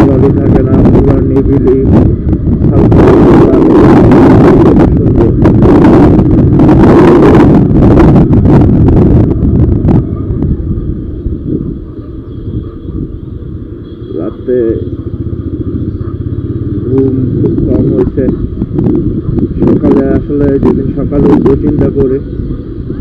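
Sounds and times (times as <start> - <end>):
motorcycle engine: 0.0 - 19.8
wind buffeting microphone: 0.0 - 23.0.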